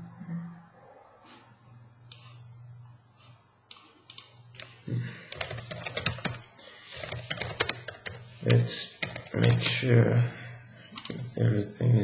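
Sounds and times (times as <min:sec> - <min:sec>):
typing on computer keyboard: 0:03.7 - 0:09.8, 0:11.0 - 0:11.3.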